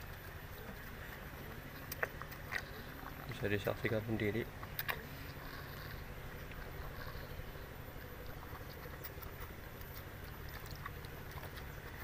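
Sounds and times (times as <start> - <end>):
goats slurping water: 0.0 - 12.0.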